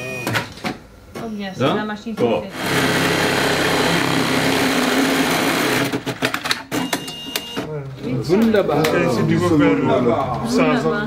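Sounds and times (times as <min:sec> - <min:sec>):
sewing machine stitching: 0:02.5 - 0:07.6.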